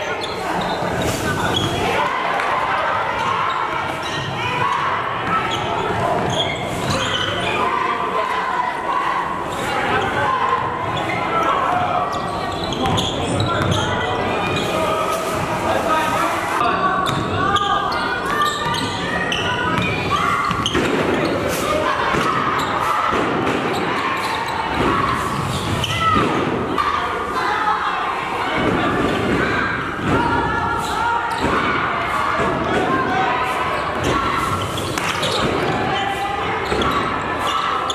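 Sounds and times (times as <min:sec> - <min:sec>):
indistinct voices: 0:00.0 - 0:37.9.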